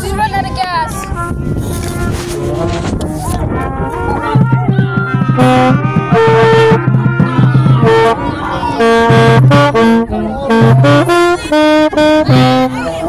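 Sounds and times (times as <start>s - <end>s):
marching band brass notes: 0.8s - 13.0s
higher held horn notes: 1.2s - 13.0s
low brass held note: 5.2s - 13.0s.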